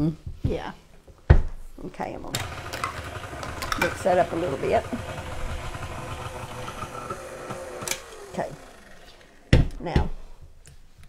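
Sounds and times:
stand mixer running: 2.4s - 9.5s.

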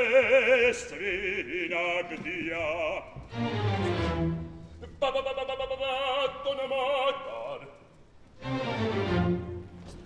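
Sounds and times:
cellos and double basses: 2.8s - 4.8s, 8.3s - 10.0s.

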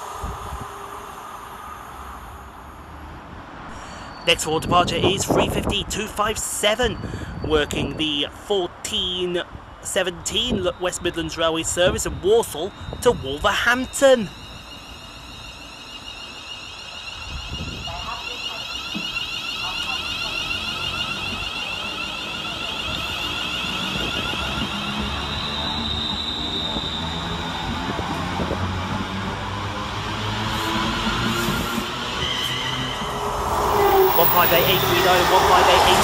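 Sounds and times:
low rail rumble: 0.0s - 8.0s, 9.0s - 36.0s
electric train motor whining: 12.7s - 36.0s.

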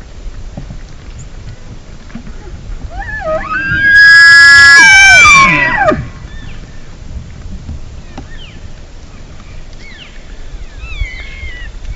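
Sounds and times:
elk bugling: 2.4s - 6.6s.

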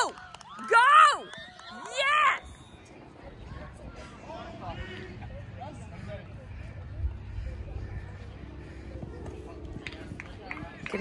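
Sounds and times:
loud shout: 0.0s - 2.4s.

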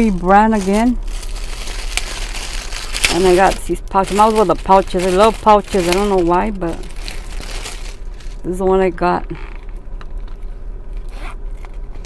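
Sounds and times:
plastic pouch rasping and rustling: 0.0s - 8.6s.

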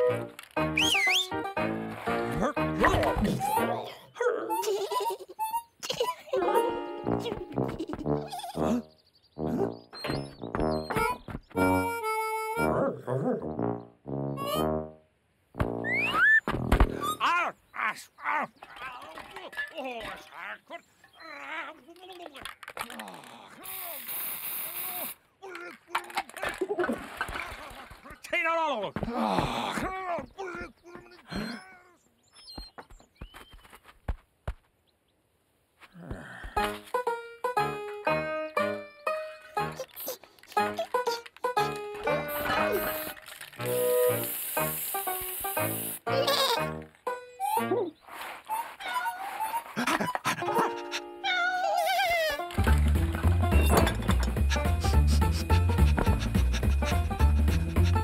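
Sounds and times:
background music: 0.0s - 4.7s, 6.4s - 11.0s, 11.6s - 16.2s, 36.6s - 48.0s, 50.4s - 51.4s, 52.3s - 58.0s
spray paint can hissing: 23.7s - 25.2s, 42.3s - 46.1s
cartoon vocal grunts: 29.0s - 32.0s.

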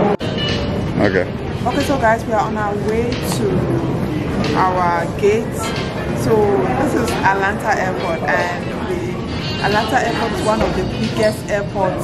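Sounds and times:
airport concourse background noise: 0.0s - 12.0s.

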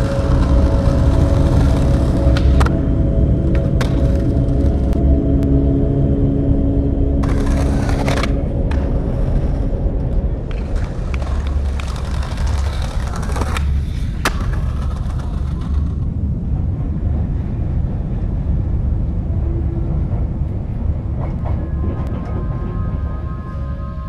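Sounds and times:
skateboard wheels rolling on concrete: 0.0s - 5.0s, 7.2s - 18.1s
underground train rumbling in tunnel: 0.0s - 24.0s
skateboard popping and landing cracks: 10.5s - 15.9s.

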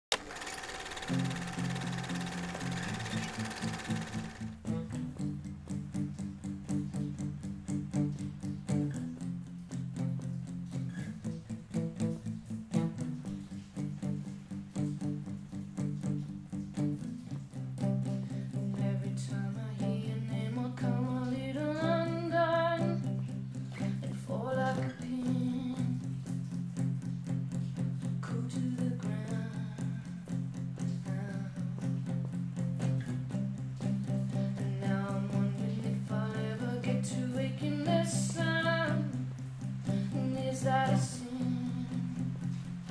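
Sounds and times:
acoustic guitar picking chords: 0.1s - 42.9s.

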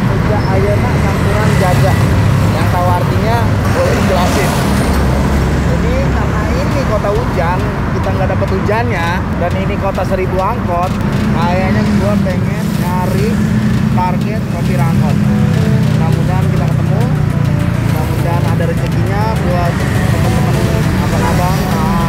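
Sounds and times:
man talking: 0.0s - 22.0s
road traffic passing: 0.0s - 22.0s.

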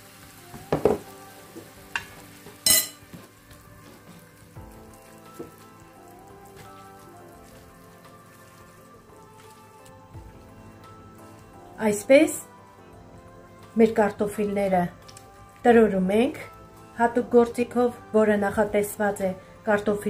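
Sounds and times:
food sizzling in frying pan: 0.0s - 15.6s.

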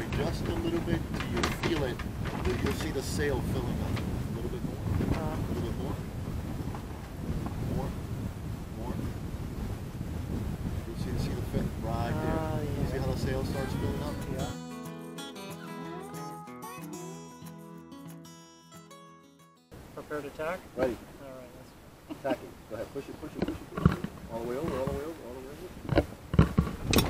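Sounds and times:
water washing along hull: 0.0s - 14.1s
wind rushing over microphone: 0.0s - 14.5s, 22.6s - 27.0s
faint voices: 10.9s - 14.6s
background music: 13.0s - 19.7s.

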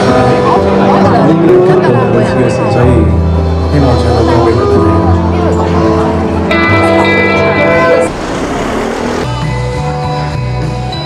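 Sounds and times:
rock band playing: 3.0s - 11.0s.

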